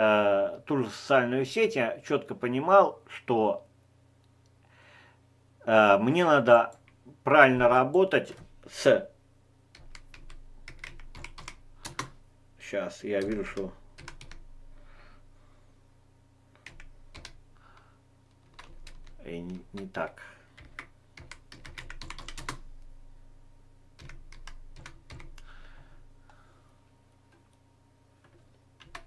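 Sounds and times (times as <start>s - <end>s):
typing on computer keyboard: 9.8s - 12.2s, 13.2s - 14.4s, 16.6s - 17.4s, 18.4s - 20.0s, 20.6s - 22.6s, 24.0s - 25.5s, 28.2s - 29.0s.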